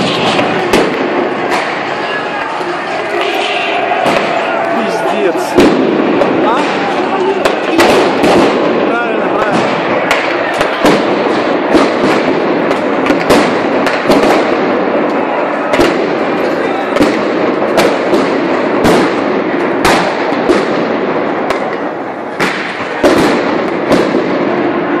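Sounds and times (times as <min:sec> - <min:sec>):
loud crowd din: 0:00.0 - 0:25.0
sharp explosive bangs: 0:00.0 - 0:25.0.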